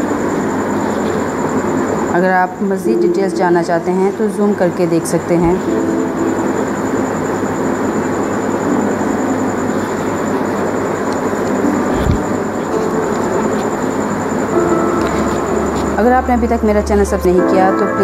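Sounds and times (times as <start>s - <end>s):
faint music: 0.0s - 18.0s
thin high whine: 0.0s - 18.0s.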